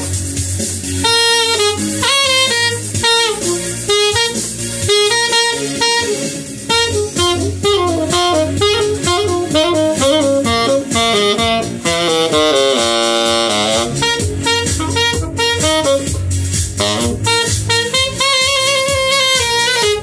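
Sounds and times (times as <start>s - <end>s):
saxophone playing quick jazz line: 0.0s - 20.0s.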